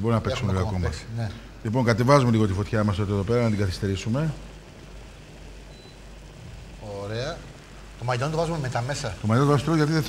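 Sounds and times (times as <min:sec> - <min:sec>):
man talking: 0:00.0 - 0:04.4, 0:06.8 - 0:10.0
low hum: 0:00.0 - 0:10.0.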